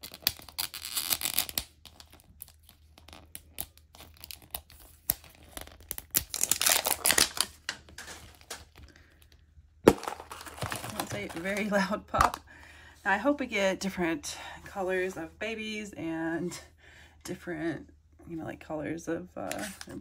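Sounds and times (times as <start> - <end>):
plastic capsule popping apart: 5.8 - 8.9, 9.8 - 12.4.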